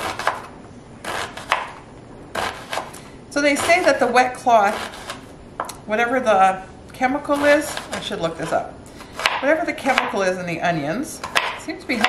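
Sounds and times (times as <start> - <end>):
knife chopping on plastic board: 0.0 - 1.8, 9.1 - 10.2, 11.2 - 12.0.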